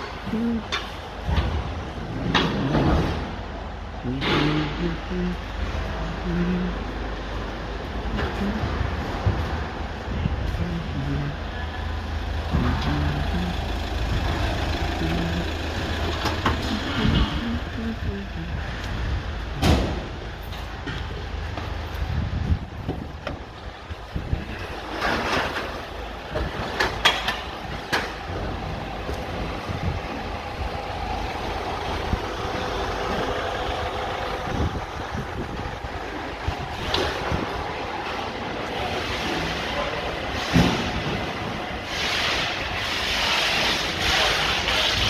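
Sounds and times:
truck engine idling: 0:00.0 - 0:45.0.

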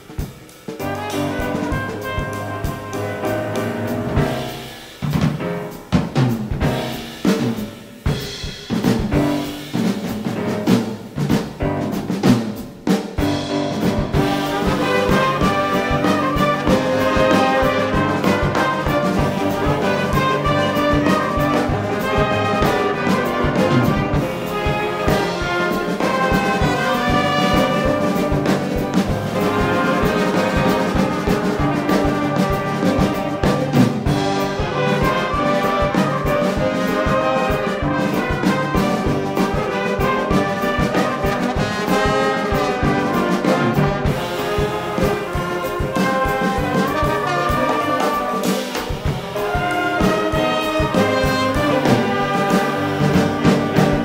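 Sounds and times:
brass band with drum kit: 0:00.0 - 0:54.0.

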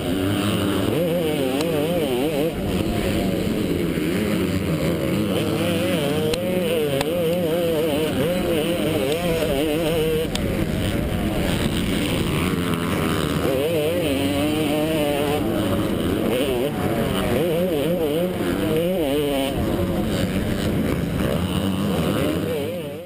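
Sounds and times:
motorcycle engine revving: 0:00.0 - 0:23.0.

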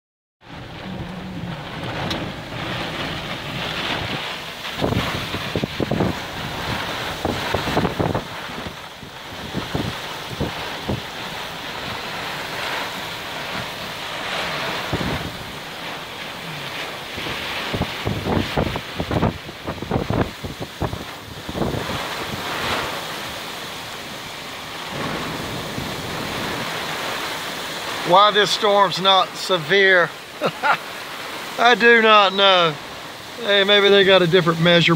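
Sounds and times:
wind gusts hitting microphone: 0:00.4 - 0:28.8
heavy rain: 0:00.4 - 0:34.9
strong gusting wind: 0:00.4 - 0:34.9.

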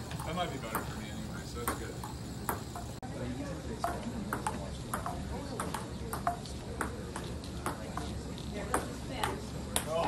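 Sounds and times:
ball clicking off paddles: 0:00.0 - 0:03.0, 0:03.8 - 0:10.0
ball bouncing on table: 0:00.1 - 0:03.0, 0:03.8 - 0:10.0.

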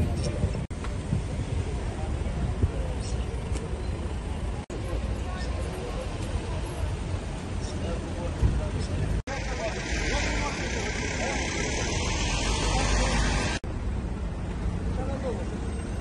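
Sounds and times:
traffic rumble: 0:00.0 - 0:16.0
indistinct voices: 0:01.7 - 0:13.6.

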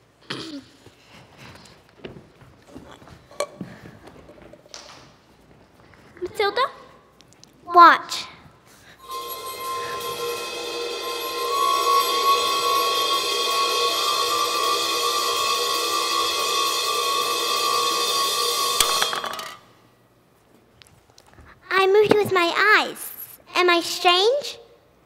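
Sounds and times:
held musical chord with cymbal shimmer: 0:09.0 - 0:19.0.

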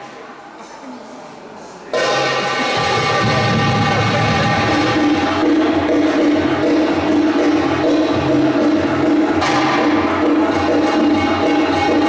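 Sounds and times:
goblet drum rhythm: 0:01.9 - 0:12.0.

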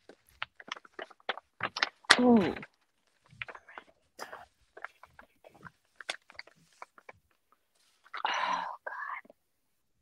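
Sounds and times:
woman whispering: 0:03.5 - 0:04.6, 0:08.1 - 0:09.4.

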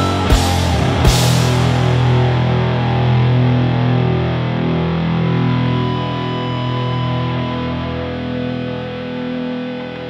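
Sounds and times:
distorted electric guitar chord: 0:00.0 - 0:10.0
low drone: 0:00.0 - 0:10.0.

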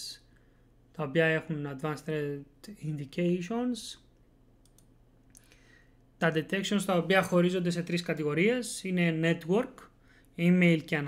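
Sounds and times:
faint steady hum: 0:00.0 - 0:11.0
computer mouse clicks: 0:04.6 - 0:05.5.

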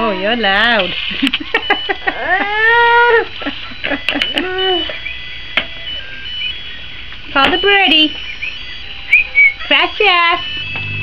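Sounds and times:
whistled bird-like chirps: 0:08.3 - 0:09.7.

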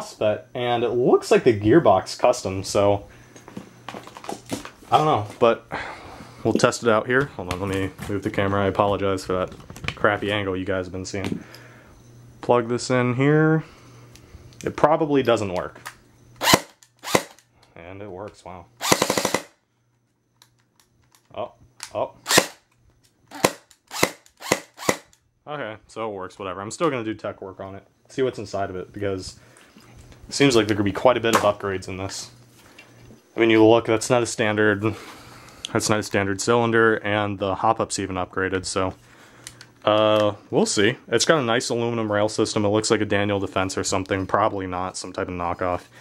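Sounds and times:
airsoft gun single shots: 0:22.3 - 0:22.6.

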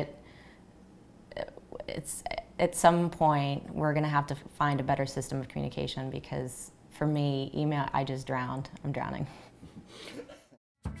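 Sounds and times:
faint breath: 0:00.2 - 0:00.7.

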